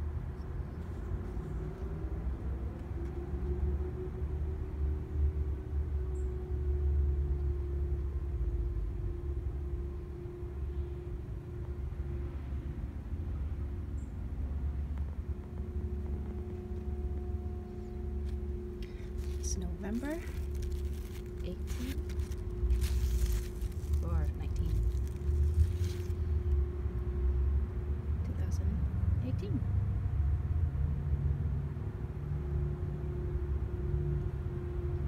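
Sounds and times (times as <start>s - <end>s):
faint steady hum: 0.0s - 35.0s
low rumble: 6.6s - 35.0s.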